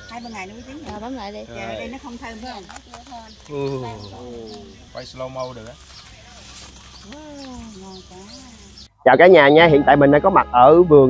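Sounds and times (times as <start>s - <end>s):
quiet voices talking: 0.0s - 11.0s.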